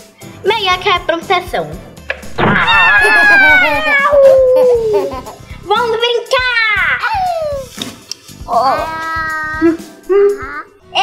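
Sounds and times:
girl squealing and vocalising: 2.6 - 5.0, 7.0 - 7.7
girl laughing: 2.6 - 5.4.

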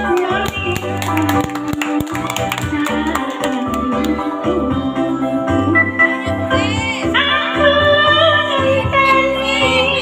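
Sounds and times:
backing music with beat: 0.0 - 10.0
woman singing through microphone: 0.0 - 10.0.

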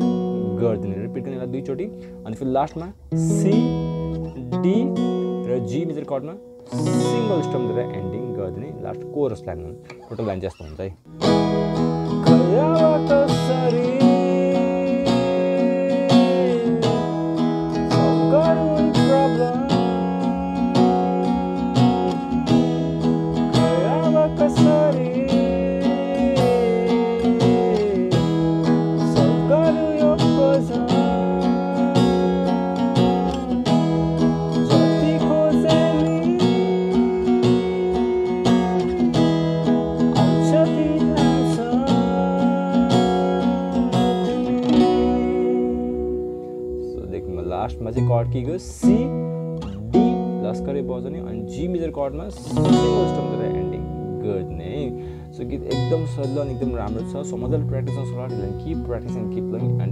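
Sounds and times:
acoustic guitar strumming chords: 0.0 - 59.9
guitar melody with pitch bends: 0.0 - 59.9.

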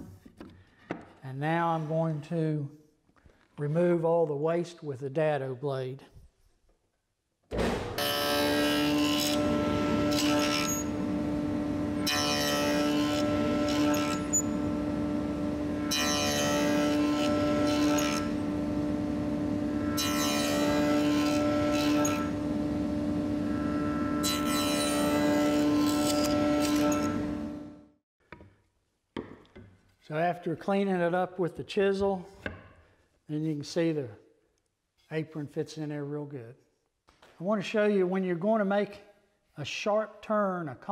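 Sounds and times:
saw blade cutting wood: 8.0 - 11.2, 11.9 - 18.5, 19.7 - 22.5, 23.5 - 27.3
table saw humming: 8.0 - 27.8.

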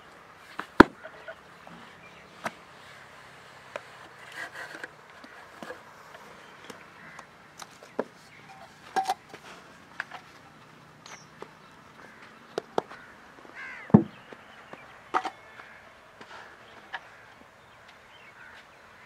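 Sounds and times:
faint outdoor background: 0.0 - 19.0.

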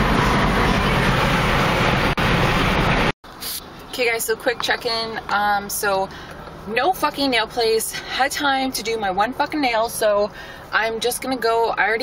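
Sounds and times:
rushing noise inside car: 0.0 - 5.0.

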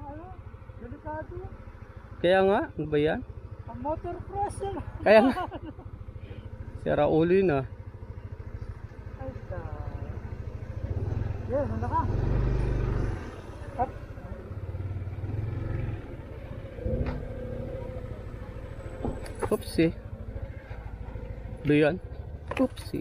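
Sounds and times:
scooter engine running under load: 0.0 - 23.0.

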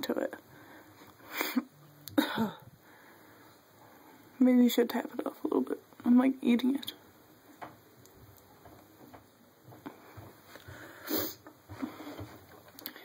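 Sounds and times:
short breath or sniff: 10.8 - 12.2.

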